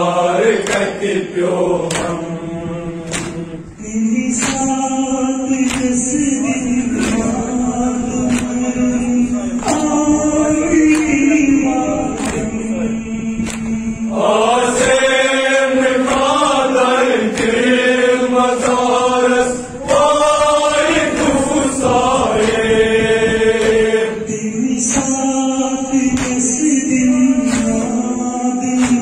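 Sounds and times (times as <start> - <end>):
voices chanting a lament: 0.0 - 29.0
sharp beat: 0.5 - 29.0.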